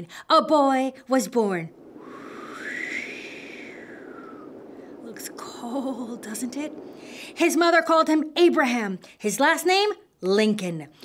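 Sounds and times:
howling wind: 0.2 - 9.8.

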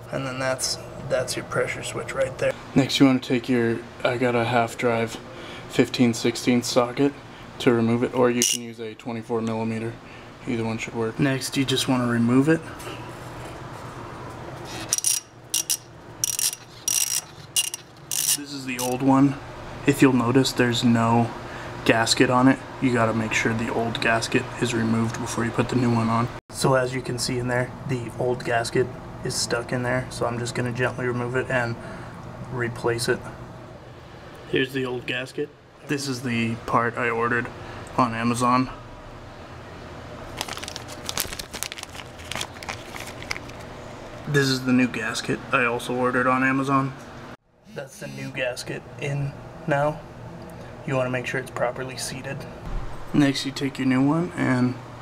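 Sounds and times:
ratchet clicking: 14.8 - 19.0
plastic bag crinkling: 40.3 - 43.7.

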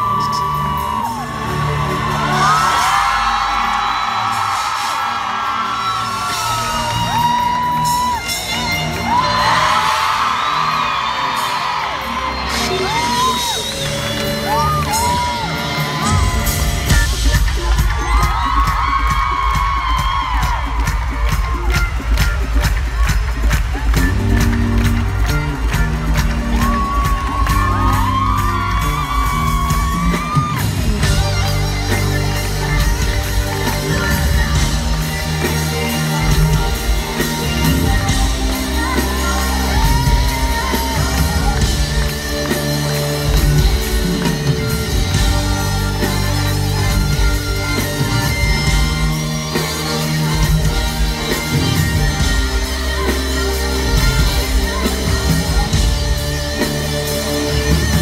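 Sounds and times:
crowd screaming and whooping: 0.0 - 58.0.

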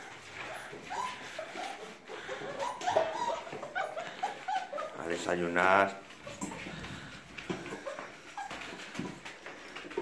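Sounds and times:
puppies whimpering and yipping: 0.0 - 5.3, 6.0 - 10.0.

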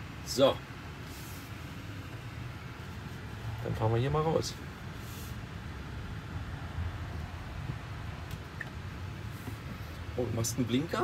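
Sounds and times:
car cabin rumble and hiss: 0.0 - 11.0
climate fan running: 0.0 - 11.0.

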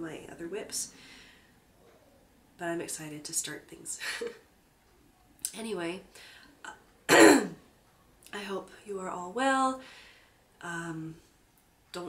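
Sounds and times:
woman clearing her throat: 7.1 - 7.6.

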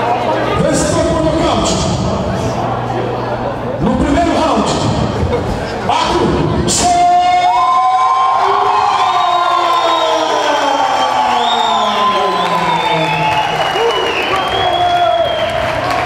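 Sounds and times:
crowd cheering and whooping: 6.8 - 16.0.

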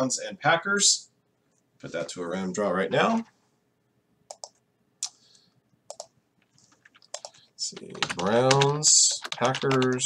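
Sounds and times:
mouse and keyboard clicks: 4.3 - 5.2, 5.9 - 6.1, 6.7 - 7.4.

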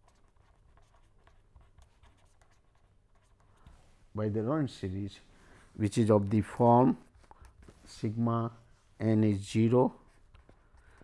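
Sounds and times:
pen scratching on paper: 0.0 - 3.8.

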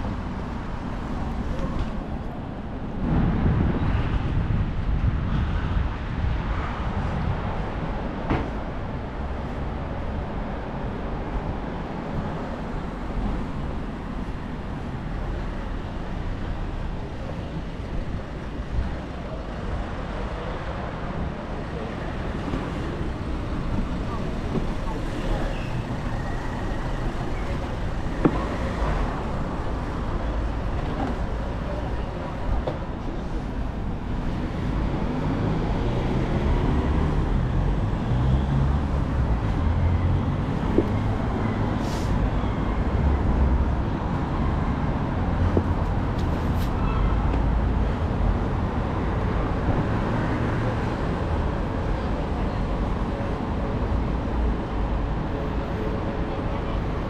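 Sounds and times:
traffic rumble: 0.0 - 57.0.

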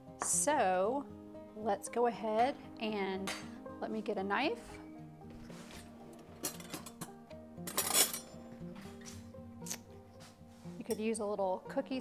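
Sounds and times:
soft background music: 0.0 - 12.0
cutlery clinking: 6.4 - 7.1, 7.7 - 8.4
cutlery clatter: 6.4 - 8.4.

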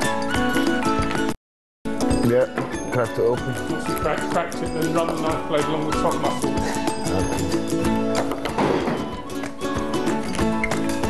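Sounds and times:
plucked guitar music with beat: 0.0 - 11.0.

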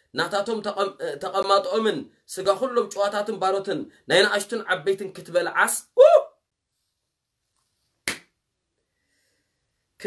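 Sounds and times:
man speaking: 0.0 - 6.4.

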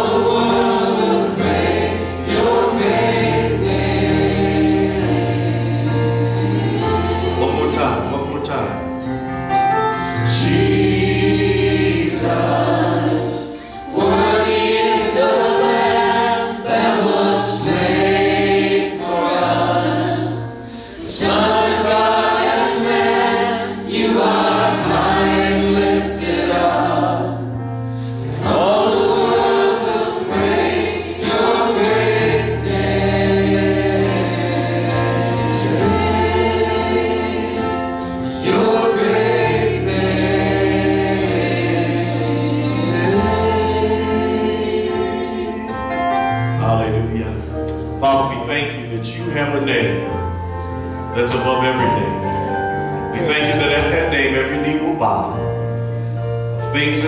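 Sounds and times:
group singing in harmony: 0.0 - 47.9
keyboard and band: 0.0 - 57.0.

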